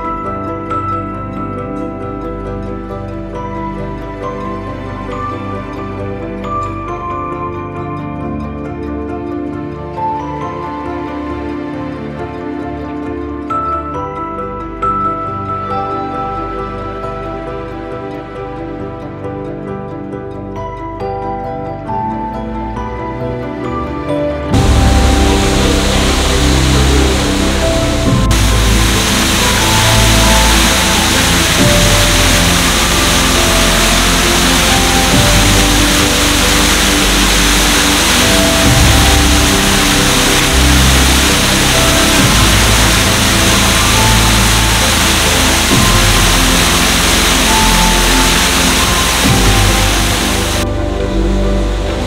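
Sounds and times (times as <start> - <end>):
background music: 0.0 - 52.0
water rushing into drain: 24.5 - 50.7.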